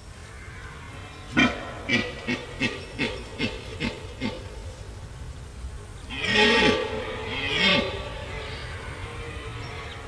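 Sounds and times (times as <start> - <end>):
deer stag roaring: 6.1 - 10.0.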